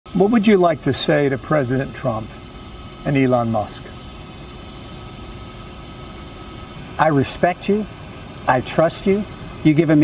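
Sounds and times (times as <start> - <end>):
faint steady tones: 0.1 - 10.0
large hall background hiss: 0.1 - 10.0.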